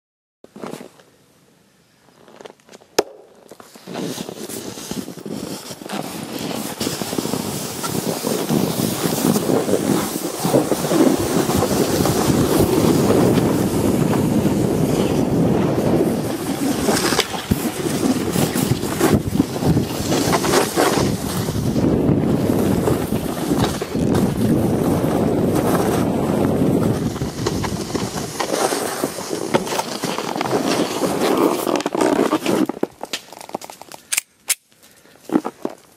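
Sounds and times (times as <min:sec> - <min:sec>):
snowboard scraping over snow: 0:03.6 - 0:33.0
wind buffeting microphone: 0:06.2 - 0:29.8.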